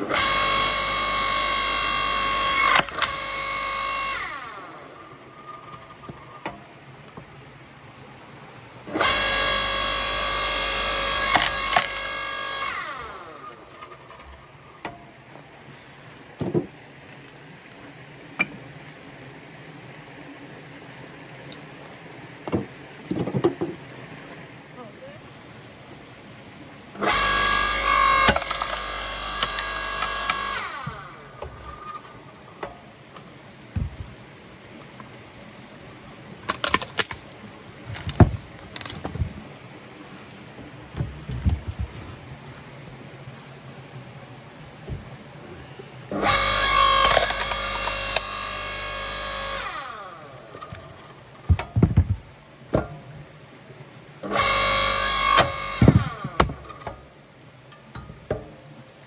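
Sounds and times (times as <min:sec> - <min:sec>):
electric log splitter motor whine: 0:00.0 - 0:05.9, 0:08.9 - 0:15.0, 0:27.0 - 0:32.8, 0:46.1 - 0:52.1, 0:54.2 - 0:57.0
logs knocking: 0:16.4 - 0:16.8, 0:22.4 - 0:23.8, 0:33.7 - 0:34.2, 0:37.8 - 0:39.5, 0:40.9 - 0:42.2, 0:51.5 - 0:53.1, 0:55.4 - 0:57.0.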